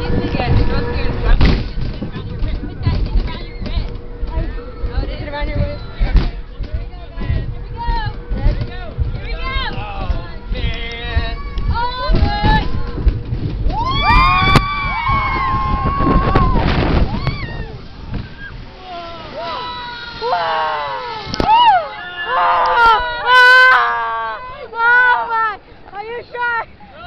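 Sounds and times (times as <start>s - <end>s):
boat rumbling along channel: 0.0s - 27.0s
wind: 0.0s - 27.0s
ride passengers screaming: 13.7s - 25.6s.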